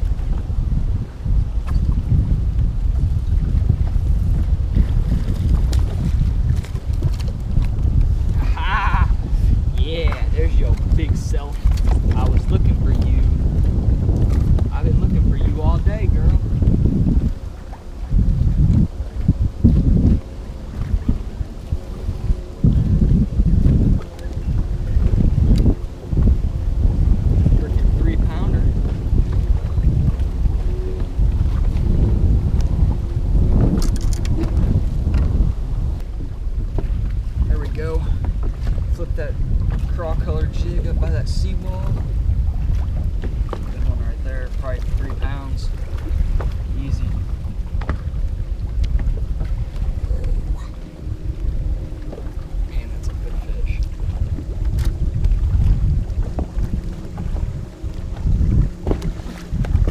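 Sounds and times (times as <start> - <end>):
wind on microphone: 0.0 - 59.9.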